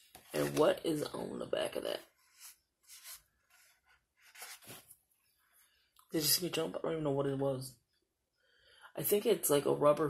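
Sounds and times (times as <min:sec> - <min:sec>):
paper pages rustling: 0:02.3 - 0:05.0.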